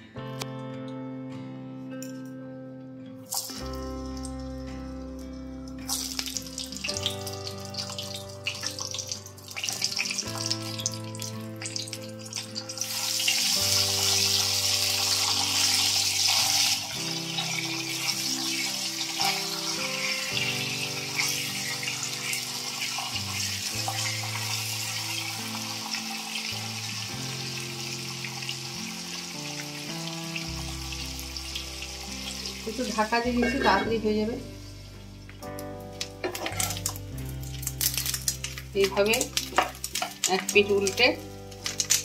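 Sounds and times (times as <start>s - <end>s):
soft background music: 0.0s - 42.0s
vegetables sizzling in hot oil: 5.8s - 42.0s.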